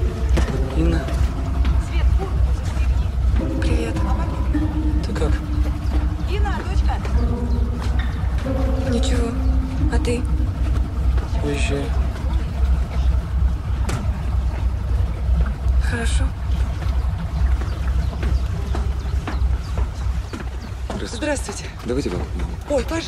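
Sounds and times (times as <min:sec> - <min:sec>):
boat engine rumbling: 0:00.0 - 0:23.0
voices: 0:00.0 - 0:23.0.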